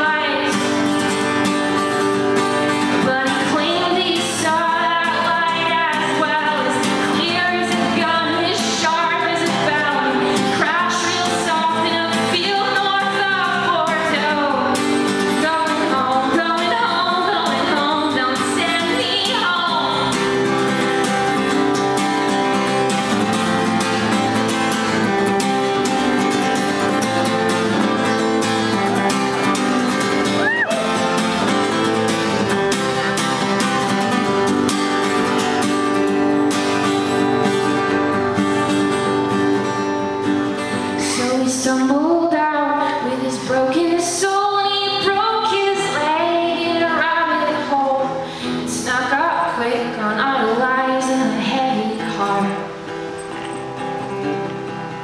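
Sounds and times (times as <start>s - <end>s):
woman singing: 0.0s - 1.1s, 2.7s - 20.6s, 40.6s - 52.7s
acoustic guitar strumming: 0.0s - 55.0s.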